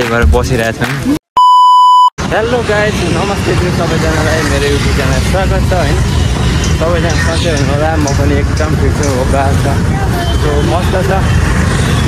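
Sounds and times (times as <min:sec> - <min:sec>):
electronic bleep tone: 0:01.4 - 0:02.1
street traffic noise: 0:02.2 - 0:12.0
voices talking: 0:02.2 - 0:12.0.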